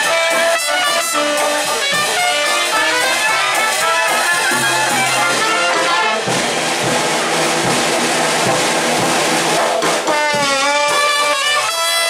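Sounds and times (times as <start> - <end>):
faint horns: 0.0 - 6.3
drum strokes: 0.0 - 12.0
jazz band playing: 0.0 - 12.0.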